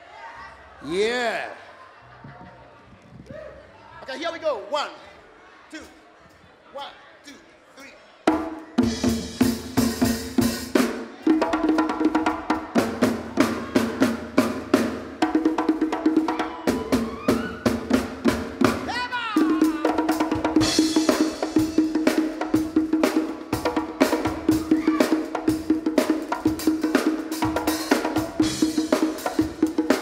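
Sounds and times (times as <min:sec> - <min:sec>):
drum kit and hand percussion: 0:08.3 - 0:30.0.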